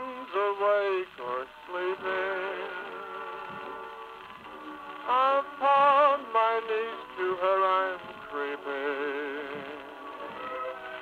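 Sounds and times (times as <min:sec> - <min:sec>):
crooner and orchestra on gramophone record: 0:00.0 - 0:11.0.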